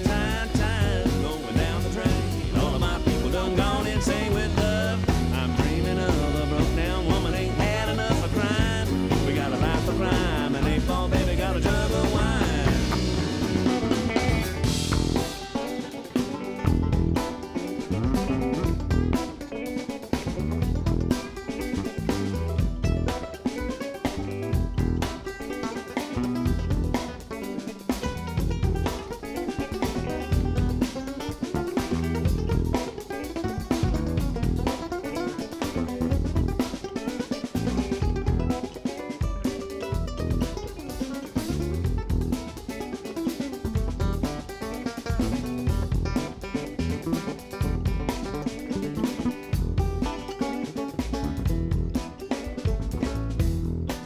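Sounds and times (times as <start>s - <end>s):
live band playing instrumental: 0.0s - 54.0s.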